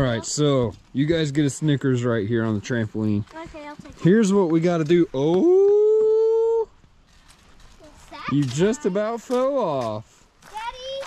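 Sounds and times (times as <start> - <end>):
faint outdoor background: 0.0 - 11.0
person exclaiming in alarm: 5.4 - 6.7.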